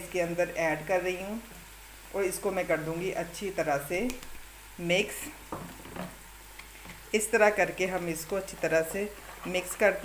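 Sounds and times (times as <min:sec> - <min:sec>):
wooden spoon scraping plastic jug: 0:07.8 - 0:10.0.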